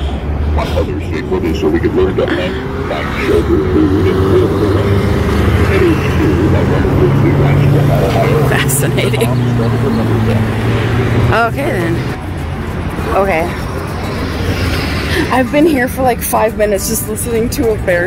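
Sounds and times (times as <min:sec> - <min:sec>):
vehicle engine rising in pitch: 0:00.0 - 0:18.0
wavering voice: 0:00.0 - 0:18.0.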